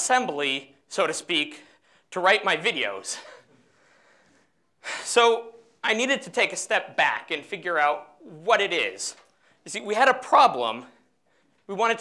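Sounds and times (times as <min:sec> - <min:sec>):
person breathing in: 0:03.6 - 0:05.1.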